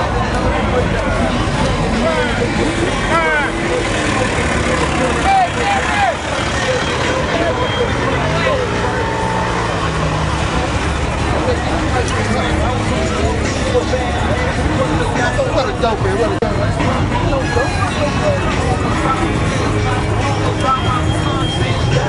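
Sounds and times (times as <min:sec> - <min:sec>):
car and truck engines in traffic: 0:00.0 - 0:22.0
people talking and calling out: 0:00.0 - 0:22.0.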